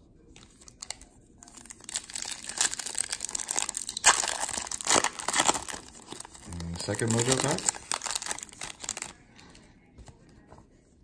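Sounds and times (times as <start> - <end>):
foil wrapper crinkling: 0.5 - 9.2.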